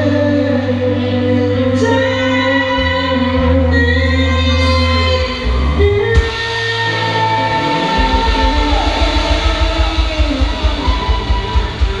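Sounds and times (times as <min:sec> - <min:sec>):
electric guitar: 0:00.0 - 0:12.0
rock band playing: 0:00.0 - 0:12.0
fast kick-drum beat: 0:08.0 - 0:12.0.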